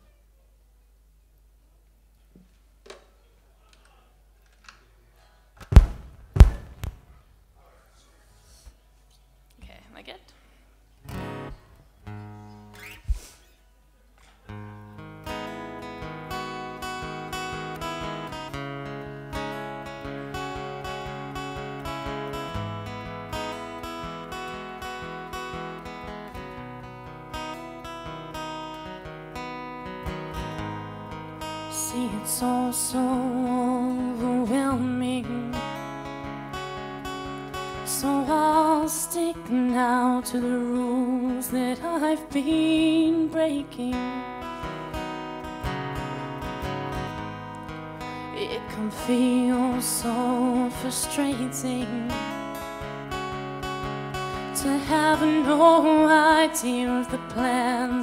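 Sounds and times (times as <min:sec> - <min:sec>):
loud thumps: 0:05.6 - 0:07.3
acoustic guitar playing: 0:11.0 - 0:13.7, 0:14.4 - 0:58.0.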